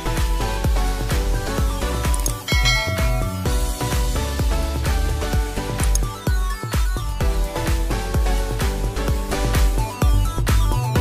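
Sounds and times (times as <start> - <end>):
music with bass-heavy beat: 0.0 - 11.0.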